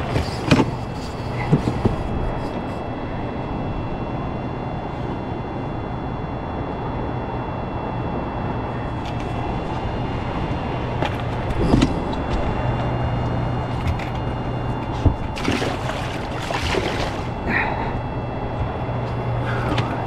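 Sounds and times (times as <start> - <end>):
low steady hum: 0.0 - 20.0.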